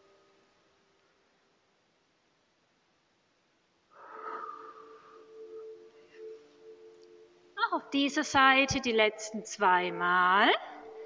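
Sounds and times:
faint steady hum: 0.0s - 11.0s
woman breathing: 3.9s - 6.8s.

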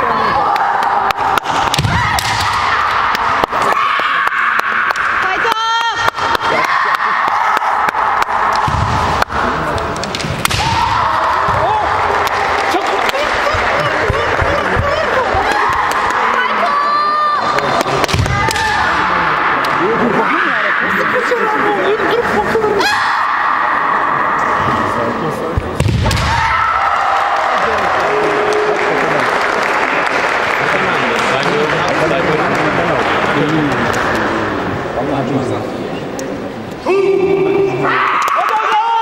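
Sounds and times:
loud shouts: 0.0s - 9.7s, 10.4s - 13.6s, 14.8s - 21.9s, 22.7s - 25.0s, 26.0s - 29.0s, 36.8s - 39.0s
murmur of voices: 0.0s - 26.5s, 27.3s - 39.0s.

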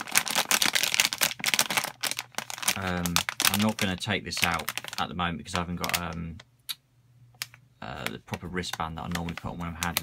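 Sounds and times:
anti-static bag crinkling: 0.0s - 6.5s, 7.4s - 10.0s.

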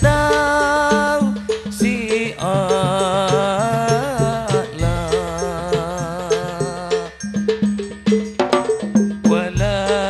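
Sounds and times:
person singing with vibrato: 0.0s - 7.4s, 9.2s - 10.0s
frame drums beating: 0.0s - 10.0s.

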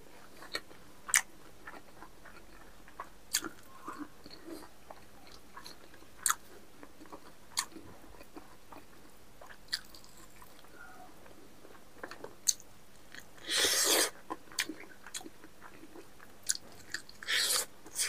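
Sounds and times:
man chewing: 0.2s - 10.7s, 11.3s - 18.0s.

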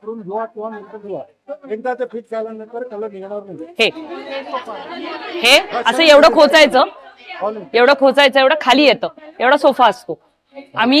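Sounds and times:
people chattering: 2.7s - 11.0s.

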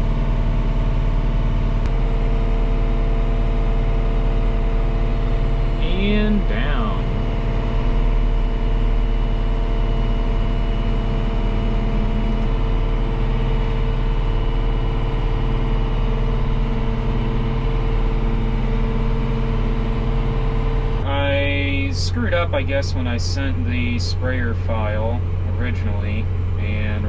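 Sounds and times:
faint steady whine: 0.0s - 27.0s
diesel engine hum: 1.8s - 27.0s.

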